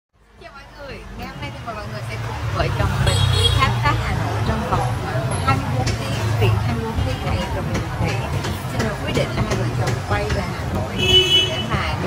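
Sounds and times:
street traffic rumble: 0.2s - 12.0s
woman talking: 0.4s - 12.0s.

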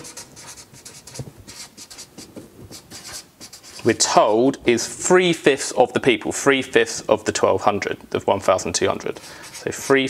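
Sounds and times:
marker scratching on paper: 0.0s - 4.0s, 9.1s - 10.0s.

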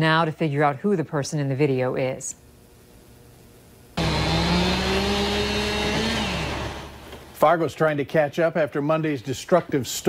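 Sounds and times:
chainsaw cutting tree trunk: 4.0s - 7.3s.

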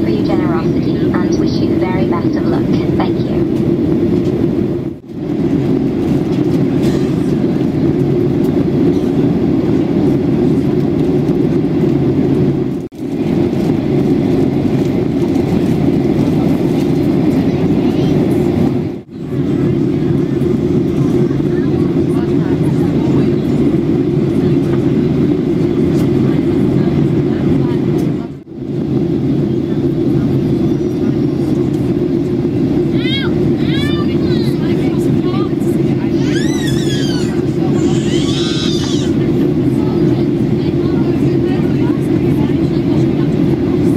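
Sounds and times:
airplane cabin engine rumble: 0.0s - 43.9s.

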